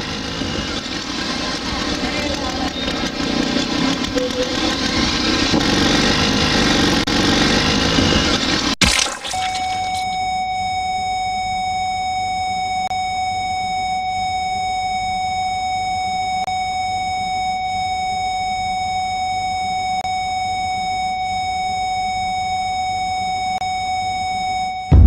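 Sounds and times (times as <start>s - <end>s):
steady electronic beep tone: 24.6s - 25.0s.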